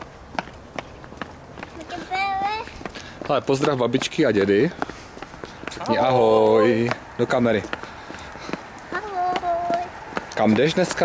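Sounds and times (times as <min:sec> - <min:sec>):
footsteps on concrete: 0:00.0 - 0:11.0.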